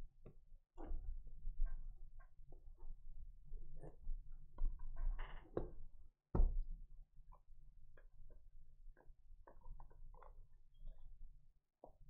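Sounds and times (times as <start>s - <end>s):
faint clicks and taps: 7.3s - 11.2s, 11.8s - 12.0s.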